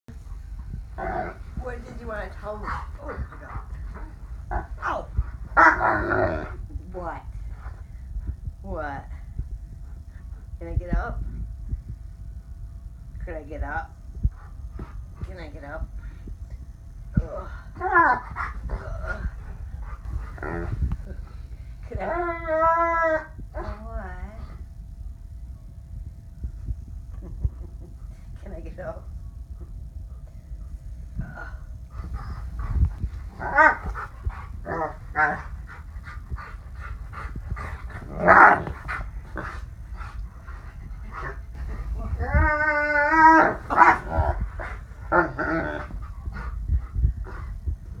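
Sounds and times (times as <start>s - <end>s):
low rumble: 0.0s - 48.0s
dog moaning: 1.0s - 7.8s, 17.2s - 23.9s, 31.2s - 47.7s.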